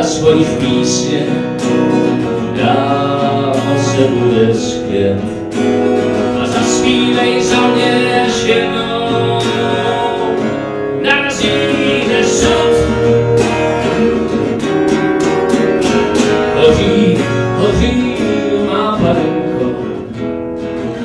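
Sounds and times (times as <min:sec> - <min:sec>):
man singing into microphone: 0:00.0 - 0:05.4, 0:06.2 - 0:14.3, 0:16.3 - 0:20.2
acoustic guitar strummed: 0:00.0 - 0:21.0.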